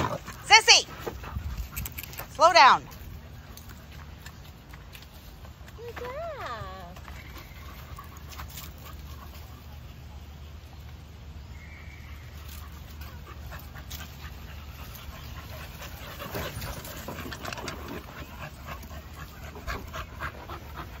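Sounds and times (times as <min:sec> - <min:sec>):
dogs panting: 0:00.0 - 0:10.4, 0:12.3 - 0:21.0.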